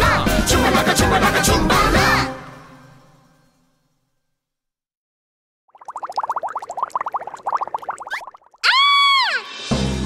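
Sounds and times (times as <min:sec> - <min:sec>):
cartoon bubbling blips: 0:05.7 - 0:08.6.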